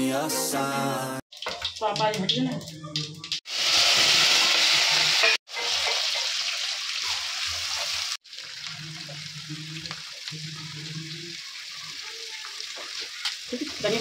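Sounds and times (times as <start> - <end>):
vegetables sizzling in oil: 1.3 - 14.0.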